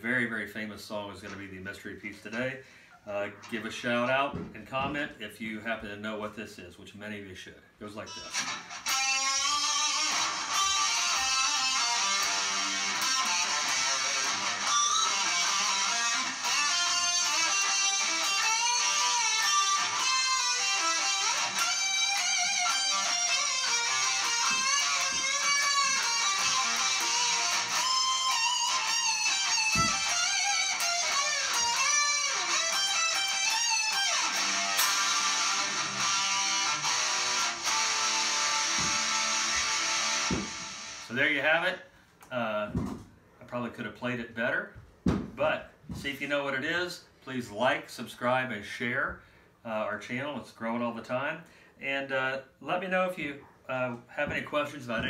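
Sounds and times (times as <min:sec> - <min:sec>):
electric guitar solo: 0:08.0 - 0:41.1.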